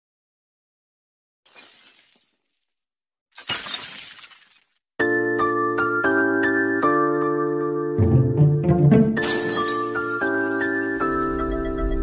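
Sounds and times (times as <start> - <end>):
glass shattering: 1.5 - 2.8, 3.4 - 4.8, 9.2 - 10.8.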